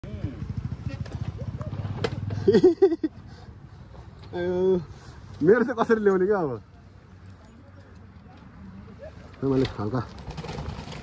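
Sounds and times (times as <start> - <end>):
dirt bike engine chugging: 0.0 - 2.6.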